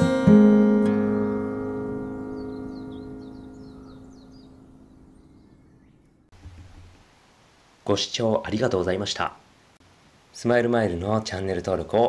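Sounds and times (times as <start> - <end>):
acoustic guitar chord ringing: 0.0 - 5.7
faint bird chirping: 0.9 - 7.0.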